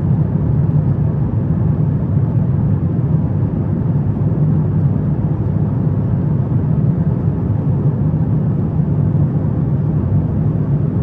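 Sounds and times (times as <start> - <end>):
airliner cabin rumble: 0.0 - 11.0.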